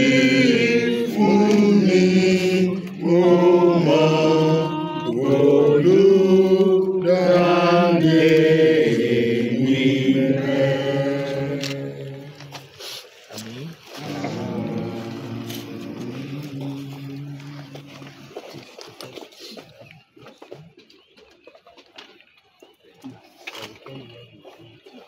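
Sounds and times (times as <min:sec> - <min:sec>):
group singing a hymn: 0:00.0 - 0:12.8, 0:14.0 - 0:18.2.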